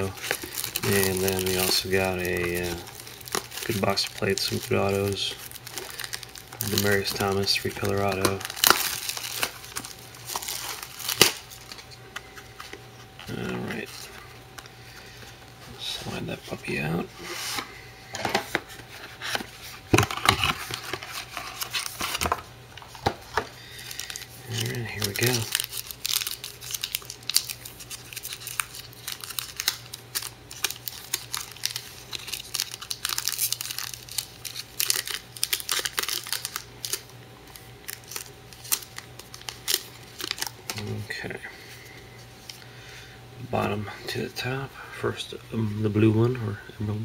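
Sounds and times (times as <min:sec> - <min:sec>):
packaging crinkling: 0:00.0 - 0:15.2, 0:18.4 - 0:41.2.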